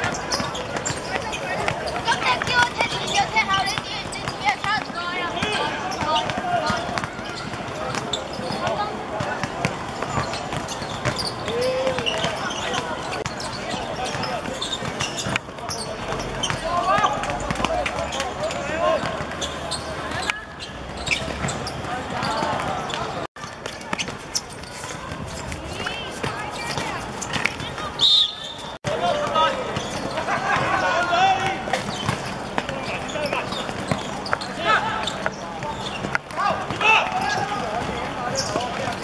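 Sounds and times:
players shouting: 0:00.0 - 0:20.4, 0:25.7 - 0:39.0.

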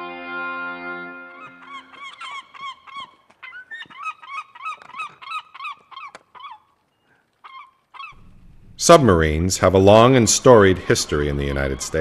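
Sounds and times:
geese honking: 0:00.7 - 0:08.2, 0:09.8 - 0:12.0.

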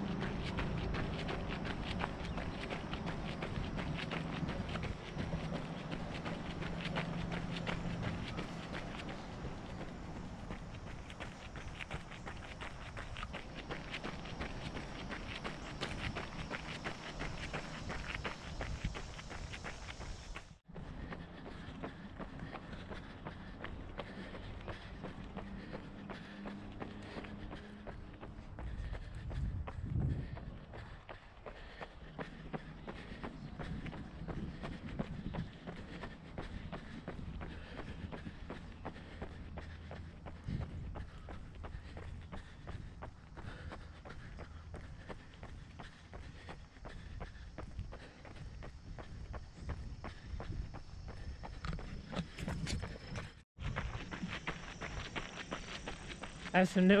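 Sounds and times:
running footsteps on pavement: 0:00.0 - 0:57.0.

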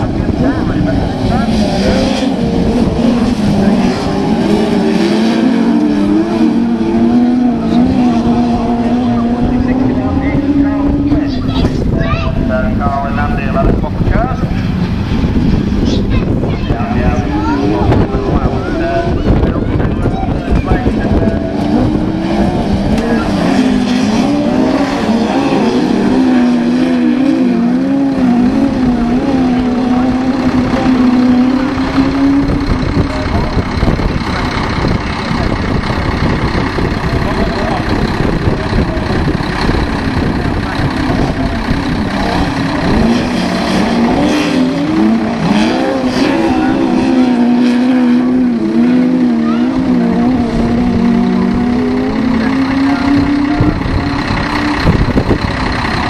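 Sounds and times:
race car engines revving: 0:00.0 - 0:56.0.

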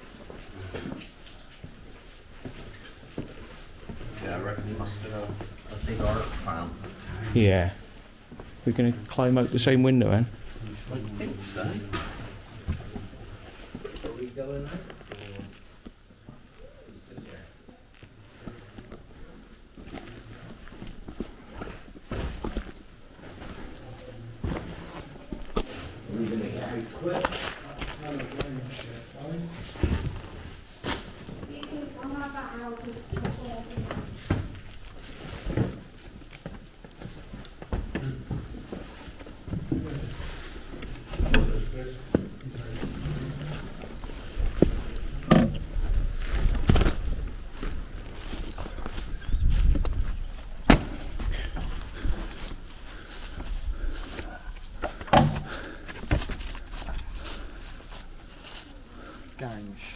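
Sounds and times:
people climbing through window: 0:10.4 - 0:59.4
footsteps: 0:18.0 - 0:59.6.

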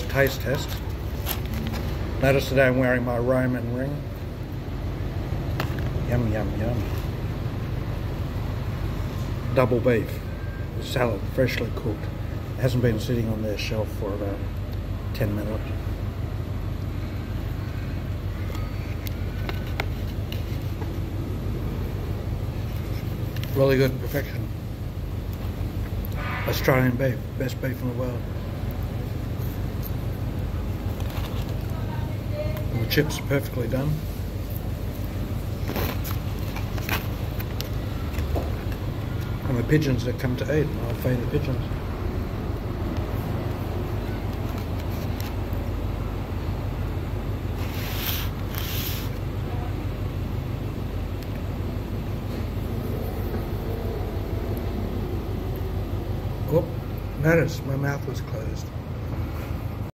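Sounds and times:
steady low hum: 0:00.0 - 0:59.9
low background rumble: 0:12.0 - 0:48.6, 0:49.2 - 0:59.9
hissy rustles: 0:47.5 - 0:49.2.

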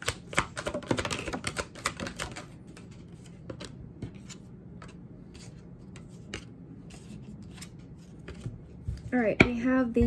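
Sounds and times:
cards being shuffled: 0:00.0 - 0:08.6.

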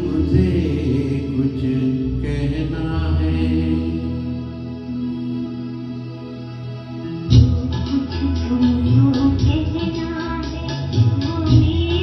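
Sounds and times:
man singing into a microphone: 0:00.0 - 0:04.6
musical accompaniment with low bass: 0:00.0 - 0:12.0.

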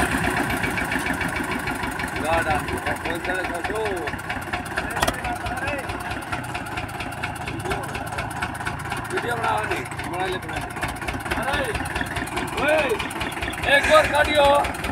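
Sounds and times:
tractor diesel engine under load: 0:00.0 - 0:14.9.

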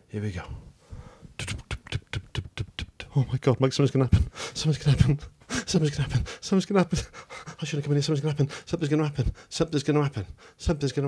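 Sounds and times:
man making mouth clicks: 0:01.4 - 0:03.4.

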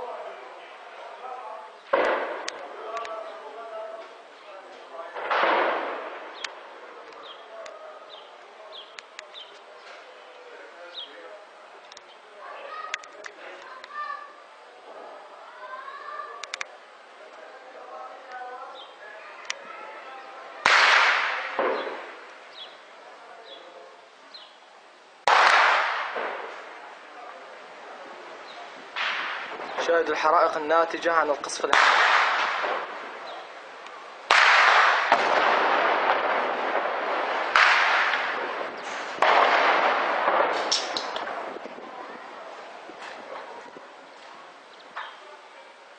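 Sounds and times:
shell explosions with rolling echo: 0:01.8 - 0:03.5, 0:04.9 - 0:08.8, 0:20.6 - 0:22.8, 0:25.2 - 0:43.9.

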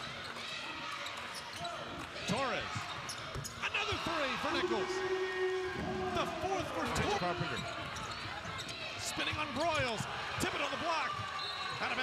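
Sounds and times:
sneakers squeaking on hardwood: 0:02.7 - 0:03.7, 0:06.9 - 0:09.8.

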